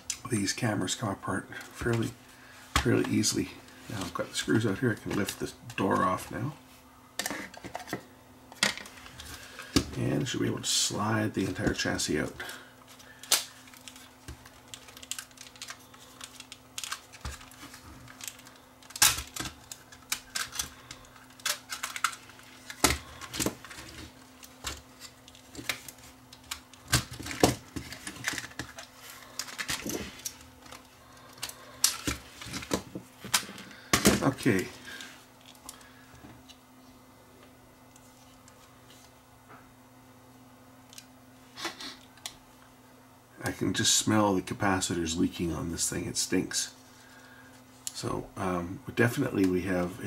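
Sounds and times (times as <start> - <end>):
plastic parts snapping: 13.2 - 34.3.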